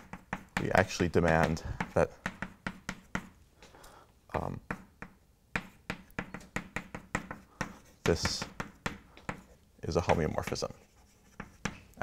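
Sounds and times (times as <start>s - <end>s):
chalk tapping on a blackboard: 0.0s - 3.4s, 4.4s - 12.0s.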